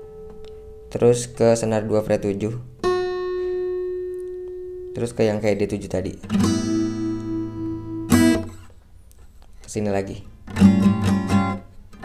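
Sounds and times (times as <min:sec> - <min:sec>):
acoustic guitar chords: 0:00.0 - 0:08.8, 0:10.2 - 0:12.0.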